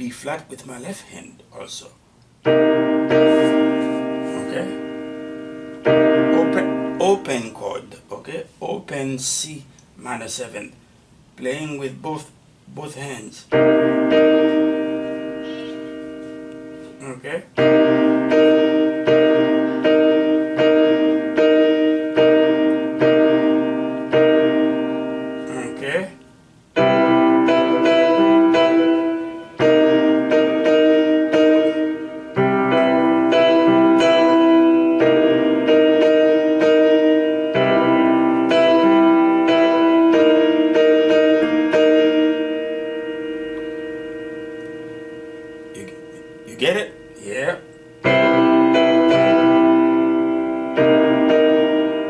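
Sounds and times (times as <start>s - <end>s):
electronic piano chords: 2.3s - 7.9s, 13.5s - 52.0s.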